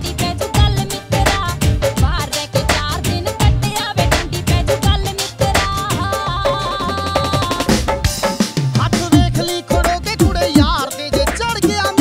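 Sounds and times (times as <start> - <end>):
woman singing: 0.0 - 7.9, 8.8 - 12.0
folk-pop band through a pa: 0.0 - 12.0
regular drum beat: 0.0 - 12.0
held stepping melody line: 8.9 - 12.0.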